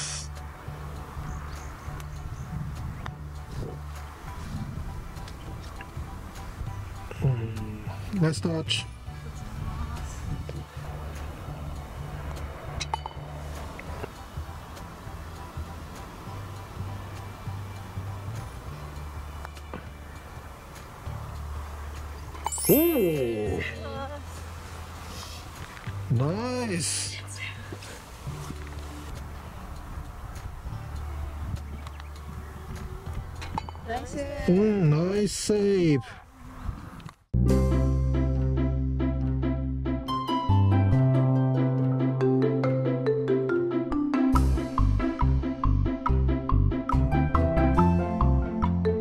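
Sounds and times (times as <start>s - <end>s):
person exclaiming ooh: 22.7s - 24.0s.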